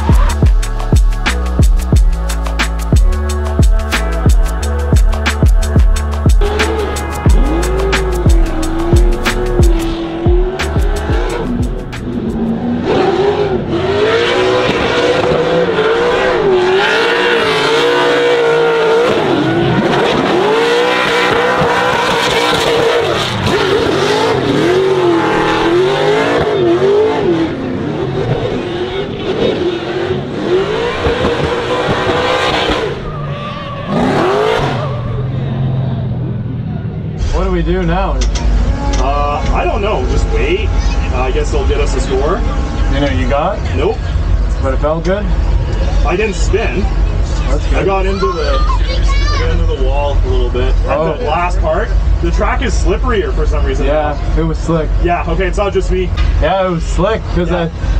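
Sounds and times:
music: 0.0 - 12.6
car engine revving: 0.0 - 57.9.

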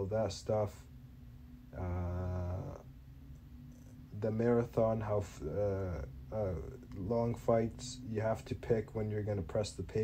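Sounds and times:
man saying uhhh: 1.8 - 2.9, 5.2 - 6.8.

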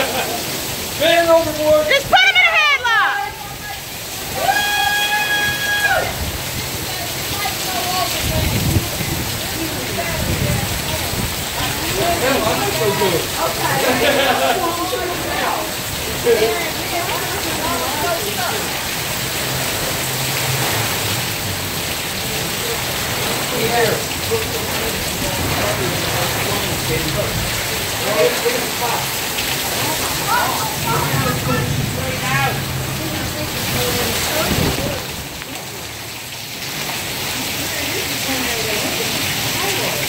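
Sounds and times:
heavy rain downpour: 0.0 - 40.0.

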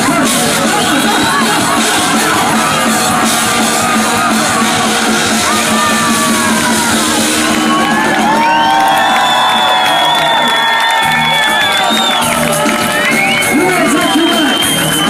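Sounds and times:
crowd cheering and whooping: 0.0 - 15.0
live band music: 0.0 - 15.0.

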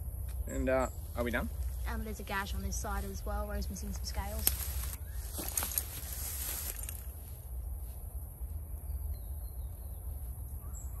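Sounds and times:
rustling in dry grass: 1.1 - 8.5
faint bird chirps: 8.7 - 11.0.

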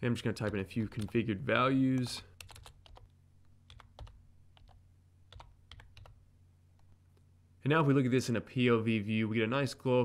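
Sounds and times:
low steady hum: 0.0 - 10.0
keyboard typing: 0.4 - 1.2, 2.0 - 6.2.

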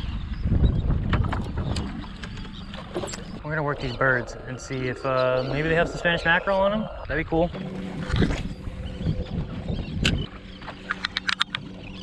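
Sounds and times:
water lapping at boat hull: 0.0 - 12.0
wind buffeting microphone: 0.0 - 12.0.

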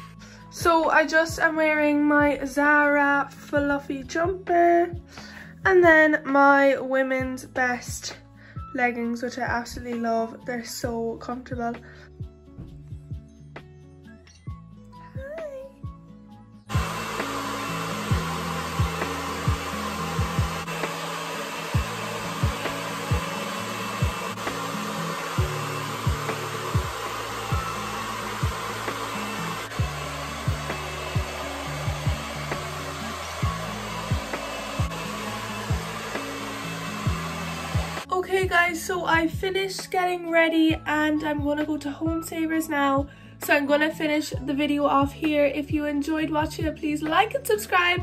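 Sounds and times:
background music with kick drum: 0.0 - 48.0
hair dryer blowing: 16.7 - 38.5.

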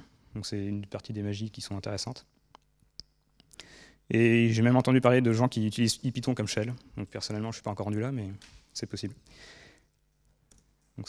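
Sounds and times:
man speaking: 0.0 - 2.2, 4.1 - 9.2
soft breath-like hiss: 9.2 - 9.9.

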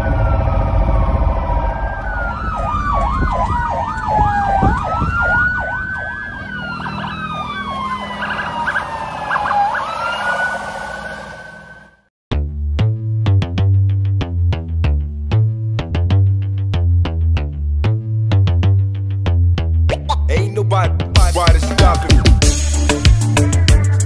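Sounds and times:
ambulance siren wailing and yelping: 0.0 - 12.1
engine and road rumble: 0.0 - 24.0.

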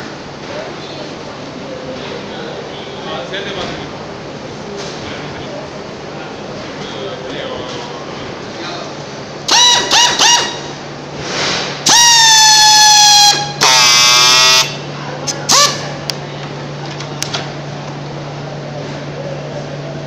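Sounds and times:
steady low hum: 0.0 - 20.0
pneumatic strapping tool whining: 9.5 - 10.7, 11.8 - 15.9.

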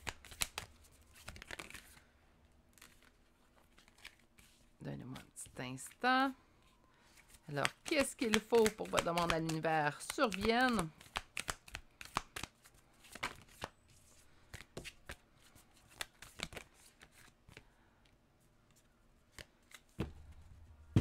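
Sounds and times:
cards shuffled by hand: 0.0 - 2.0, 2.7 - 5.3, 7.1 - 17.6, 18.7 - 20.6.

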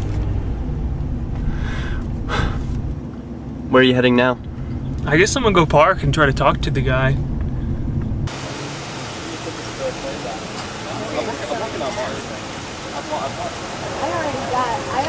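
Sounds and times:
low rumble inside car: 0.0 - 3.6, 4.3 - 8.3
street and traffic noise: 0.0 - 15.0.

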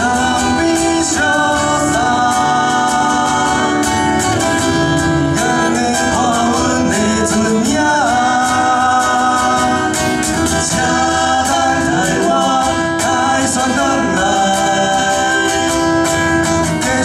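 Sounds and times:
acoustic guitars: 0.0 - 17.0
men singing: 0.0 - 17.0.

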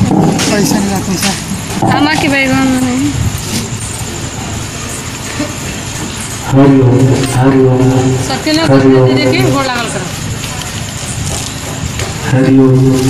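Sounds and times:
mixed voices: 0.0 - 13.0.

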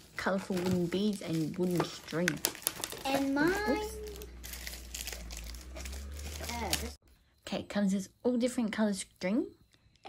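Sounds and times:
plastic tray crinkling: 0.3 - 7.0.

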